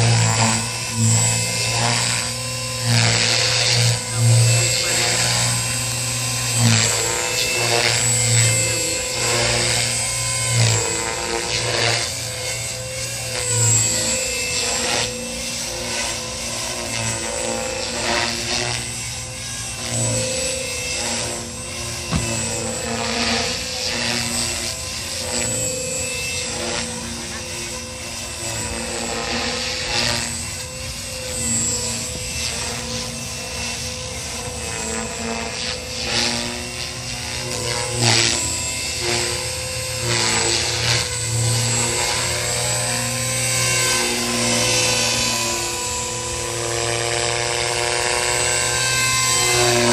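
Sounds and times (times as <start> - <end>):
helicopter motor and rotor whine: 0.0 - 49.9.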